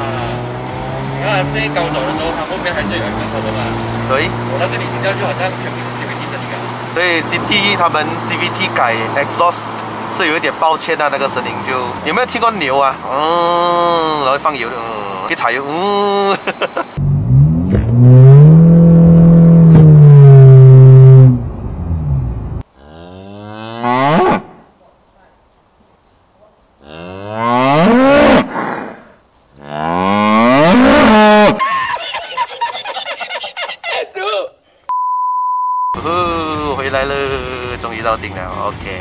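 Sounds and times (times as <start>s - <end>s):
car engine droning: 0.0s - 15.7s, 16.3s - 22.6s, 36.0s - 39.0s
cow mooing: 22.8s - 24.2s, 29.6s - 31.5s
short steady beep: 34.9s - 36.0s.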